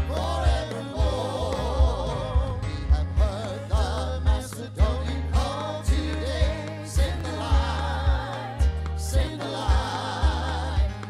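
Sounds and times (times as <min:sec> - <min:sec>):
church band playing: 0:00.0 - 0:11.0
steady low beat: 0:00.0 - 0:11.0
voices singing: 0:00.0 - 0:11.0.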